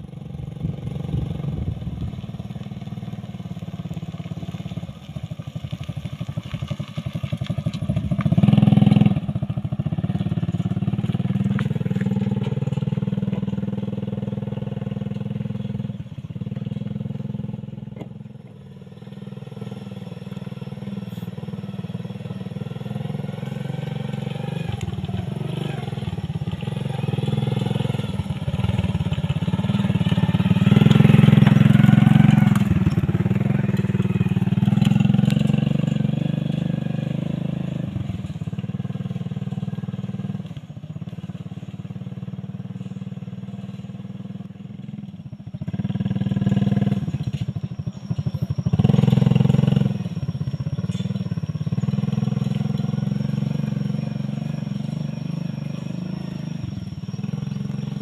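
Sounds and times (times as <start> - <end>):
small motorcycle engine droning: 0.0 - 58.0.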